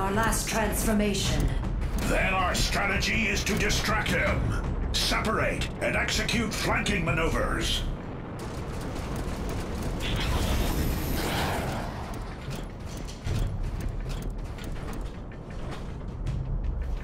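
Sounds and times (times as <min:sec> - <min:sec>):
sharp metallic clicks and clanks: 0:00.0 - 0:05.2, 0:08.4 - 0:17.0
low rumble: 0:00.0 - 0:17.0
mechanical whirring: 0:00.3 - 0:04.5, 0:06.0 - 0:17.0
rush of noise: 0:05.8 - 0:12.7.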